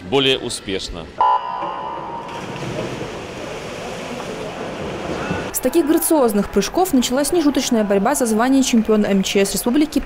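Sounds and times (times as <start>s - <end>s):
swimmers splashing: 1.4s - 9.0s.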